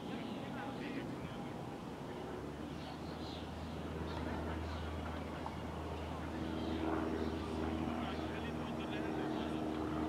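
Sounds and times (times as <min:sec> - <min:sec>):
faint voices: 0:00.0 - 0:10.0
steady engine drone: 0:00.0 - 0:10.0.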